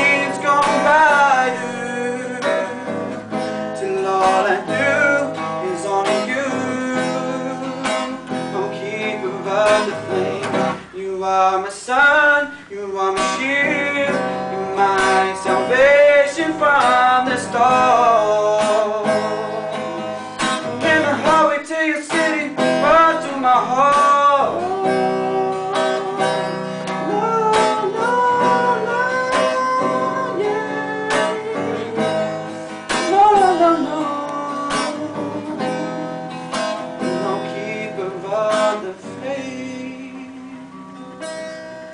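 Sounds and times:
man singing: 0.0 - 41.3
acoustic guitar strumming: 0.0 - 41.9.

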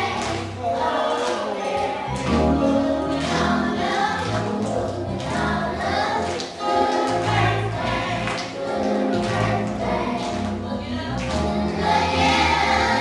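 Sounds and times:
group of voices singing: 0.0 - 13.0
instrumental backing with bass: 2.0 - 13.0.

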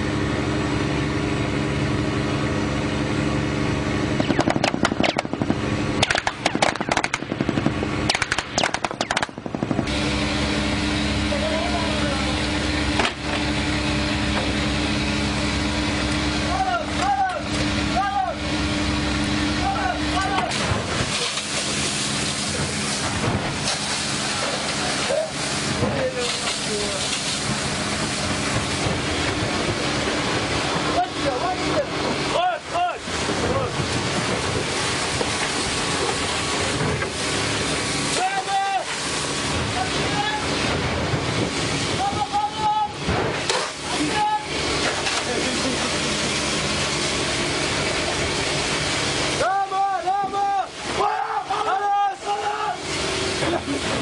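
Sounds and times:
boat engine running: 0.0 - 54.0
sharp cracks: 4.1 - 9.9
voices: 11.2 - 13.6, 15.2 - 18.6, 19.2 - 27.6, 30.7 - 33.9, 38.1 - 40.8, 41.8 - 46.4, 49.3 - 54.0.

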